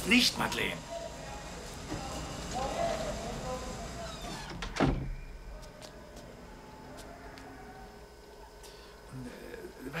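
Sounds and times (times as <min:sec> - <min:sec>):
door banging shut: 0:04.2 - 0:05.2.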